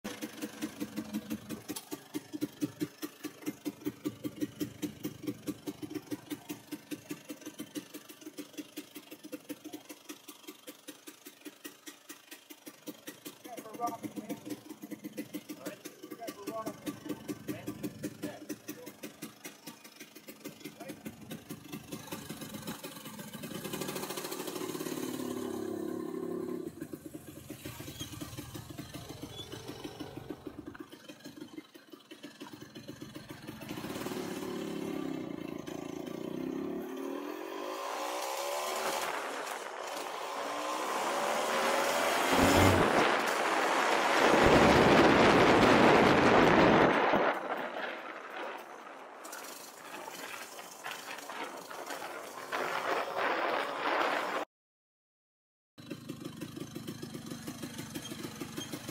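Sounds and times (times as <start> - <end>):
scooter engine accelerating: 0.0 - 54.5, 55.8 - 58.9
loud rushing noise: 38.7 - 49.2.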